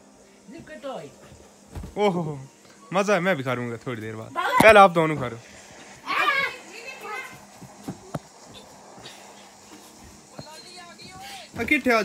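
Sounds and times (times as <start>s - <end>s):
thump on floor mattress: 1.7s - 2.1s.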